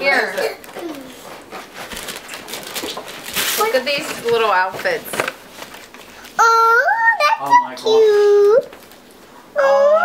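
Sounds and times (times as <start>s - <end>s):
wrapping paper crinkling: 0.6s - 6.4s.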